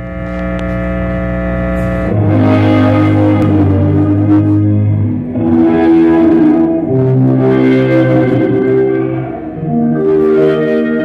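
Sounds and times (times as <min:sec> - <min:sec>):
electric guitar droning chord: 0:00.0 - 0:11.0
low hum: 0:00.0 - 0:11.0.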